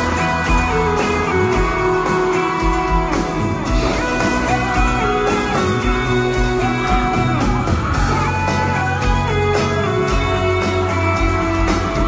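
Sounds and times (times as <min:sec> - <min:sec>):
electric guitar sliding notes: 0:00.0 - 0:12.0
live band playing: 0:00.0 - 0:12.0.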